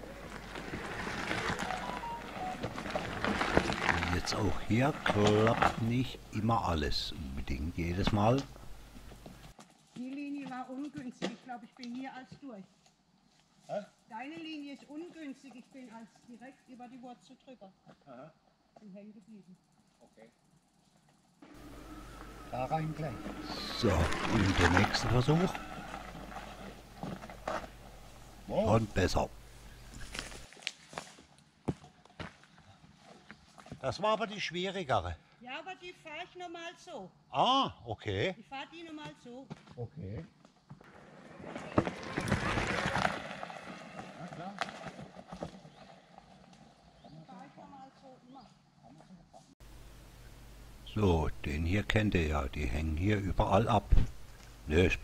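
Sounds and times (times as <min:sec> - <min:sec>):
bike tyres crunching over roots: 0:00.0 - 0:06.5, 0:21.5 - 0:33.9, 0:40.8 - 0:47.1.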